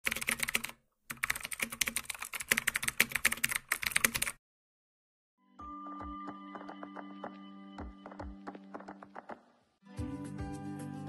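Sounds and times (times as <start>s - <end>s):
computer keyboard typing: 0.0s - 4.4s.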